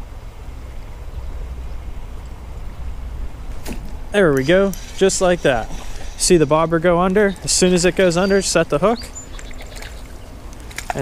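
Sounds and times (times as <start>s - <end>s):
continuous low rumble: 0.0s - 11.0s
creek flowing: 0.1s - 11.0s.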